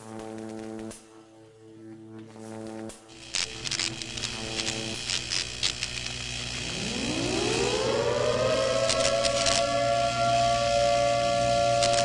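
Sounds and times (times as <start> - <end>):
glitchy static crackles: 3.1 - 12.0
low synthesized drone rising in pitch: 6.2 - 12.0.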